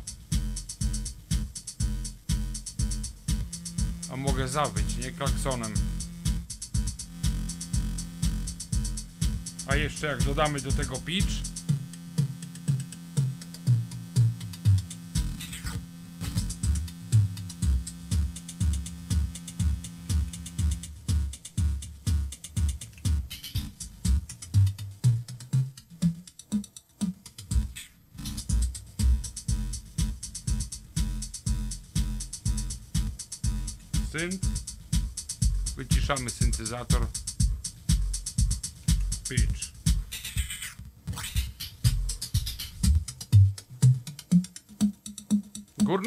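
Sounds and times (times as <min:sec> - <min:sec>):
electronic kick drum beat: 0:00.0 - 0:46.0
eight-bit synthesizer tone: 0:01.8 - 0:22.3.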